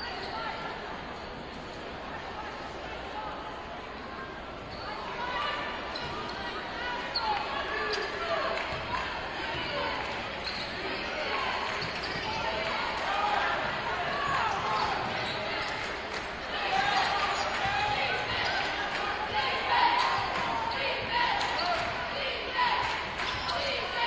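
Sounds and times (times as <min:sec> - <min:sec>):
crowd voices echoing: 0:02.2 - 0:24.0.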